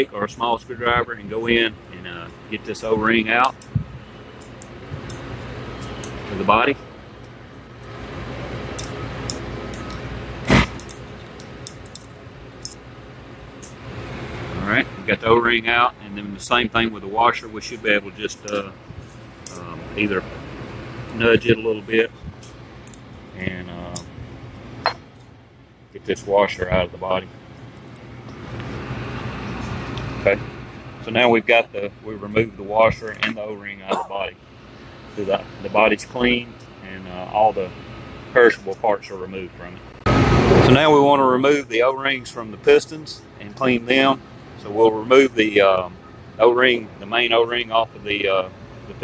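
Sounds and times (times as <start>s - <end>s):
background hum: 0.0s - 49.0s.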